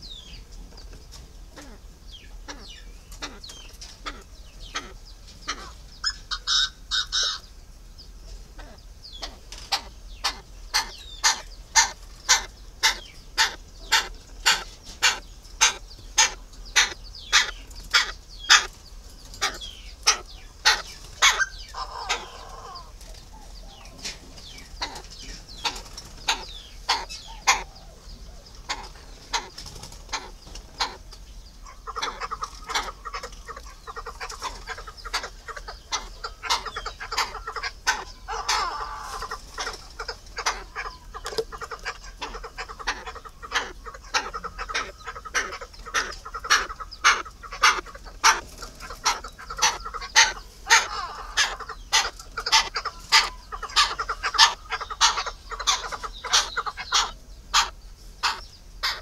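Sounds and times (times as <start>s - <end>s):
fowl clucking: 0.0s - 7.5s, 8.3s - 59.0s
soft bird chirping: 0.0s - 59.0s.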